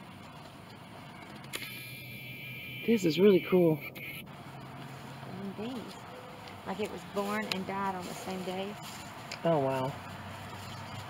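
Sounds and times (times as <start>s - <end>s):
camera zoom motor whining: 1.2s - 2.8s
woman speaking: 5.3s - 6.0s, 6.7s - 8.8s, 9.4s - 10.0s.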